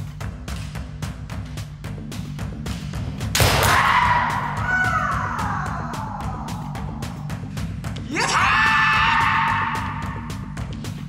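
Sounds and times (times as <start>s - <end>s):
background music with steady beat: 0.0s - 11.0s
bamboo sword hit: 3.4s - 3.9s
person shouting: 3.6s - 7.0s, 8.0s - 10.4s.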